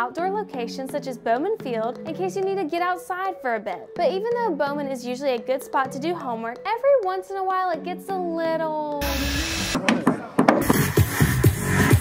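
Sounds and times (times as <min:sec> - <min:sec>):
tools knocking on wood: 0:09.8 - 0:10.8.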